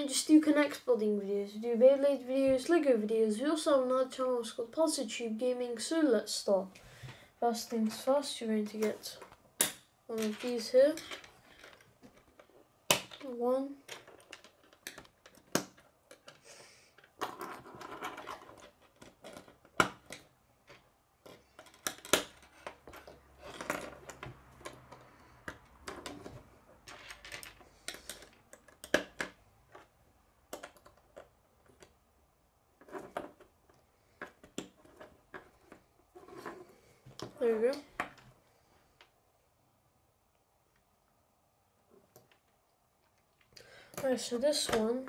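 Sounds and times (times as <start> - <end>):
plastic pieces clicking on table: 13.9 - 16.4, 17.0 - 29.9, 30.5 - 32.0.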